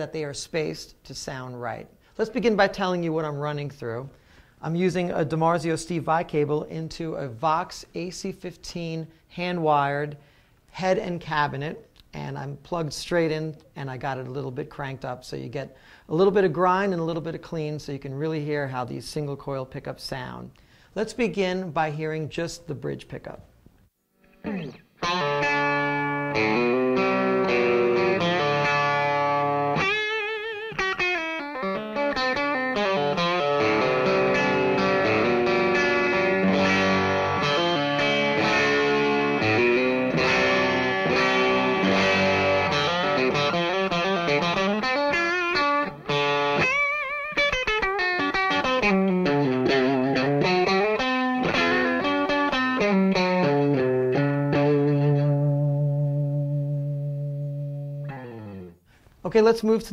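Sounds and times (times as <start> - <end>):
electric guitar with light overdrive: 24.2 - 59.0.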